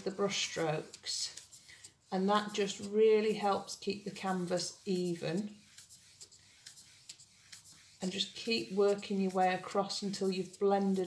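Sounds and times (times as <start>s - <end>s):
paintbrush scratching on canvas: 0.0s - 11.0s.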